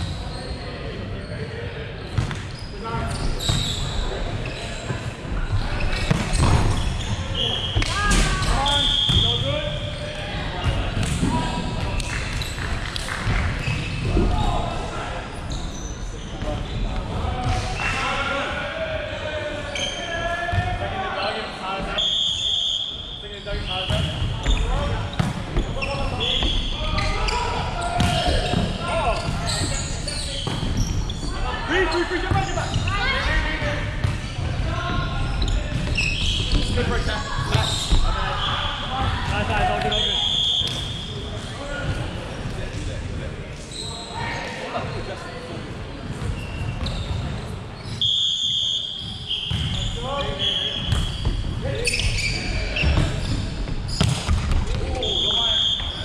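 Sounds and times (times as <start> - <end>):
shoes squeaking on wooden court: 0.0 - 14.7, 15.4 - 17.9, 23.2 - 41.2, 43.6 - 48.2, 48.8 - 56.0.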